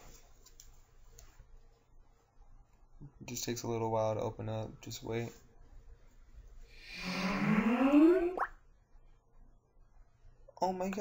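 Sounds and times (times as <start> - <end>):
rising electronic tone: 6.8 - 8.5.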